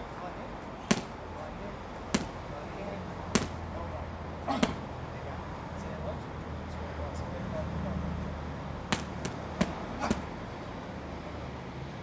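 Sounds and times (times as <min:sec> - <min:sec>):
boxing gloves smacking strike pads: 0:00.8 - 0:01.3, 0:02.1 - 0:02.5, 0:03.2 - 0:03.8, 0:04.5 - 0:04.9, 0:08.9 - 0:10.4.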